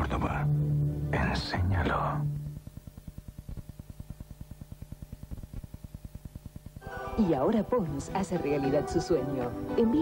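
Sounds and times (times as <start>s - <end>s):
music with low sustained note: 0.0s - 2.8s, 6.8s - 10.0s.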